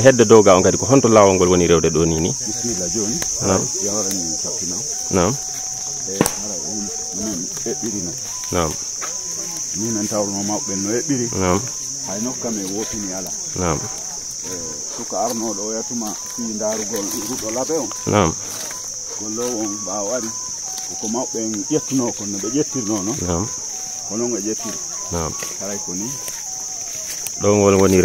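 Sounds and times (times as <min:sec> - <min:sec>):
insects droning: 0:00.0 - 0:28.0
people talking: 0:00.0 - 0:28.0.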